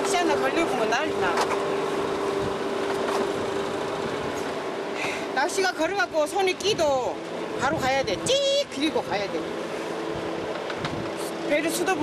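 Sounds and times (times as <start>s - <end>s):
boat engine running: 0.0s - 12.0s.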